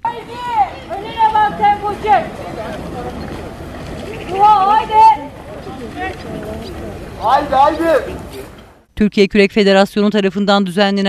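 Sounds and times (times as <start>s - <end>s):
faint distant voices: 0.0s - 8.8s.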